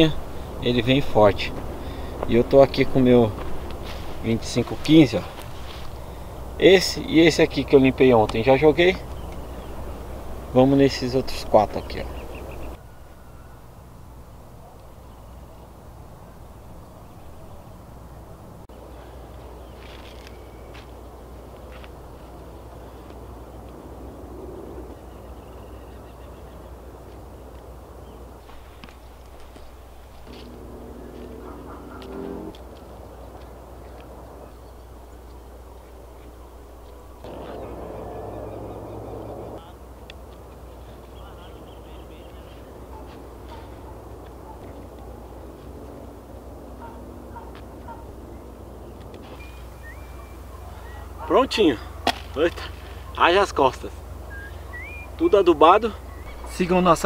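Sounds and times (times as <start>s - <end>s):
steady low hum: 0.0s - 19.7s, 20.3s - 57.0s
pitched calls: 29.9s - 32.8s, 40.8s - 52.1s, 52.8s - 57.0s.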